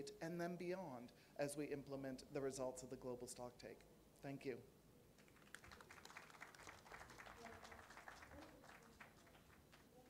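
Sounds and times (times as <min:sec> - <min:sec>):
faint applause: 0:05.2 - 0:10.0.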